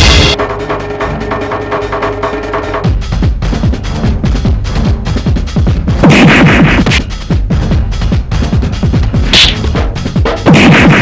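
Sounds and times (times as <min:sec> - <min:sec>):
electronic music with drum beat: 0:02.9 - 0:11.0
sharp whack: 0:10.5 - 0:11.0.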